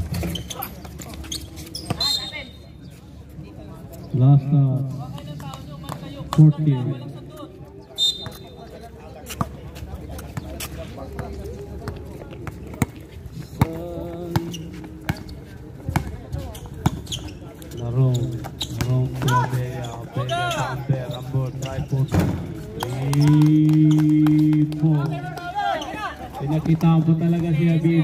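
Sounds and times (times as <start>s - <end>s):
basketball bouncing on concrete: 13.6s - 17.0s.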